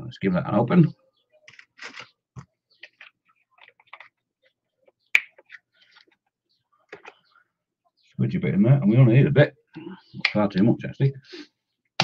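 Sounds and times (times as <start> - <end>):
plastic cap clicks and scratches: 2.7 - 6.2.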